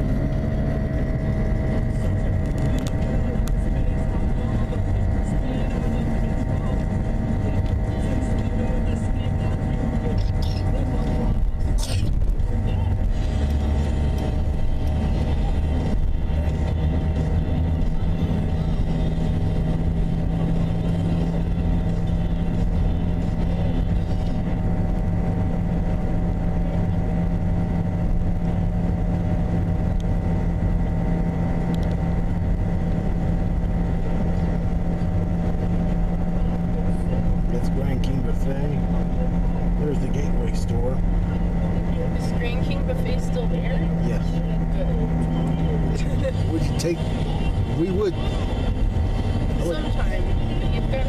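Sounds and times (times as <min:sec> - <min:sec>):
car engine and tyres droning: 0:00.0 - 0:51.0.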